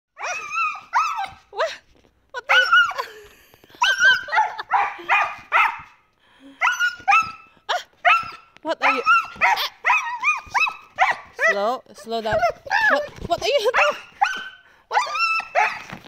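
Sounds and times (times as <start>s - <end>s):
husky barking and yowling: 0.2s - 1.7s, 2.4s - 3.1s, 3.8s - 6.0s, 6.6s - 16.0s.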